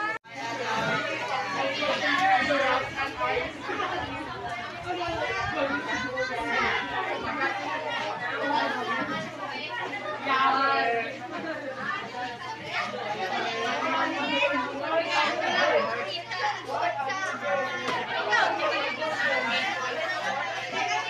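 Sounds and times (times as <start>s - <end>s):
overlapping chatter of students: 0.0s - 21.0s.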